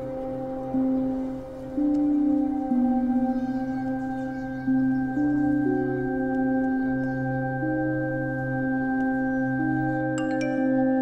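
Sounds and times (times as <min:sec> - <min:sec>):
slow ambient music: 0:00.0 - 0:11.0
steady high tone: 0:00.0 - 0:11.0.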